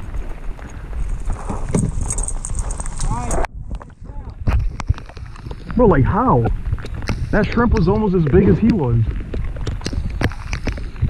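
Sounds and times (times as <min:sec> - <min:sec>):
wind buffeting microphone: 0:00.0 - 0:11.0
raindrops ticking on camera: 0:04.6 - 0:11.0.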